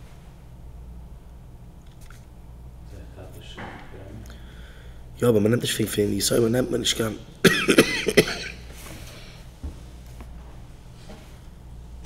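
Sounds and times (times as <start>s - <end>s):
man coughing: 7.4s - 8.7s.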